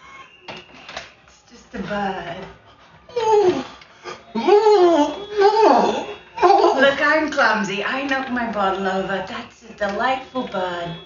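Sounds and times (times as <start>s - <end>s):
conversational voices: 1.3s - 11.0s.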